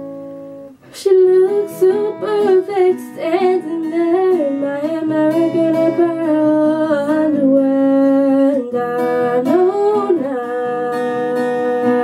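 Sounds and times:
acoustic guitar: 0.0 - 12.0
woman humming: 3.9 - 12.0.

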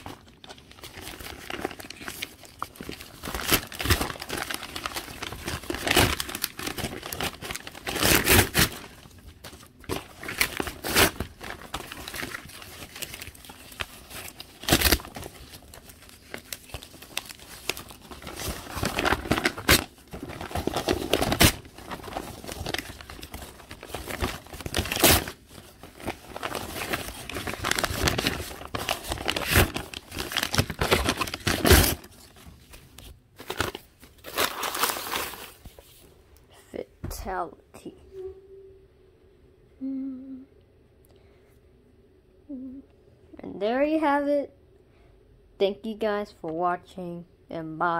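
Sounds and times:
paper tearing and crumpling: 0.0 - 36.0.

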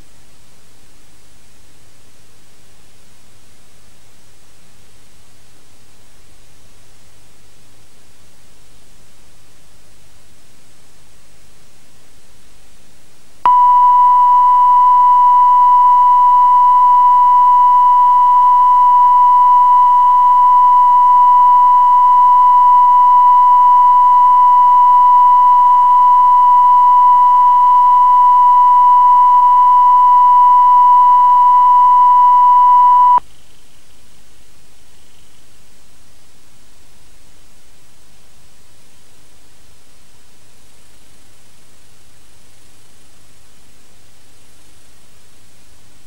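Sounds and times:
faint tape hiss: 0.0 - 46.0
steady test tone: 13.5 - 33.2.

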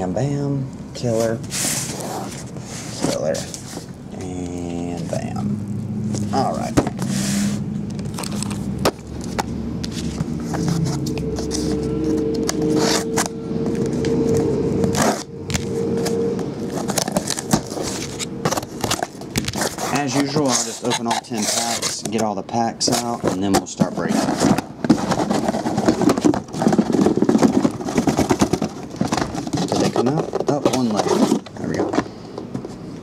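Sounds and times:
cardboard case scrapes and clicks: 1.0 - 4.0, 6.2 - 22.2, 22.8 - 32.8.

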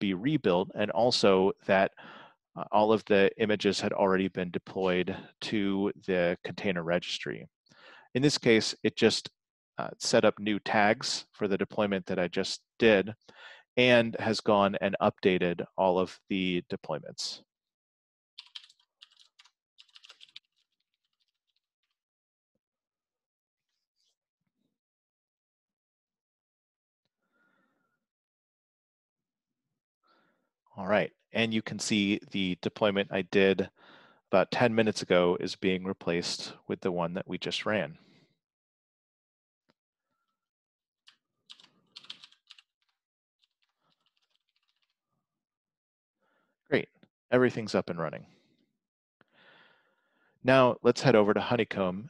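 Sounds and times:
typing on computer keyboard: 18.4 - 21.3, 41.5 - 42.7, 43.4 - 44.9.

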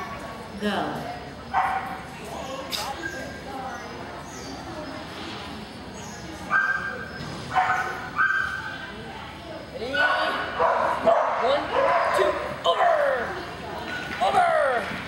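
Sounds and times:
dogs barking and yipping: 6.5 - 8.8, 10.0 - 13.3.

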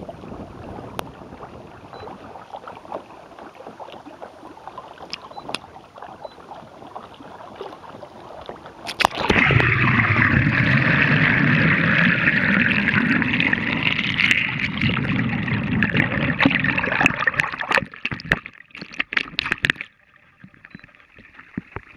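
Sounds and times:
muffled underwater rush: 0.0 - 21.9
water sloshing against kayak hull: 0.0 - 21.9.

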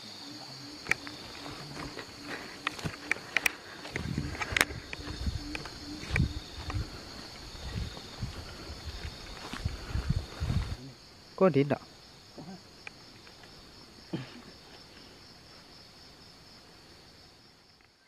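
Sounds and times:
crickets and insects chirring: 0.0 - 18.0
low pulsing call: 0.1 - 8.8
footsteps on dry palm fronds: 1.0 - 10.8.

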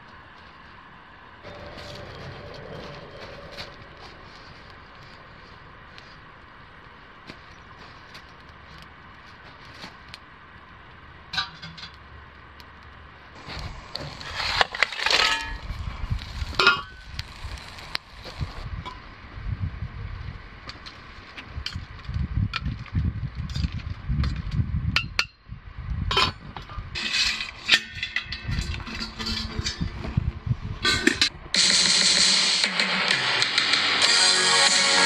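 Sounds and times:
low steady rumble: 0.0 - 31.6
background music: 31.6 - 35.0.

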